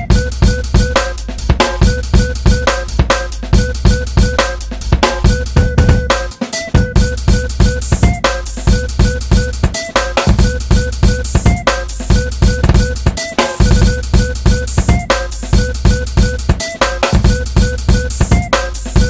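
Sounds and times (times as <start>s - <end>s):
drum kit breakbeat: 0.0s - 19.0s.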